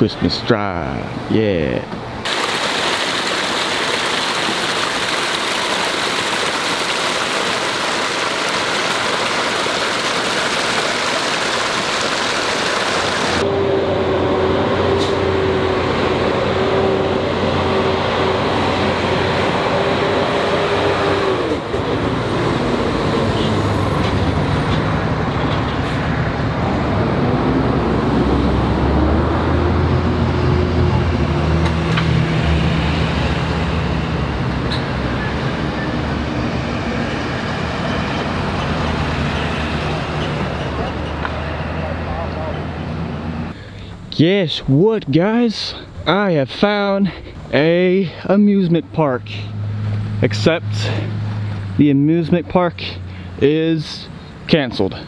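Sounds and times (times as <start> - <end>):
truck engines passing: 0.0 - 55.0
water splashing down a cascade: 2.3 - 13.4.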